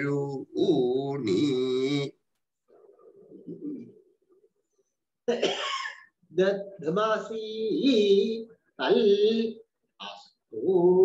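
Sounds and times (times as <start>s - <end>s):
man murmuring over video call: 0.0s - 4.4s, 6.2s - 11.0s
man coughing: 5.3s - 6.2s.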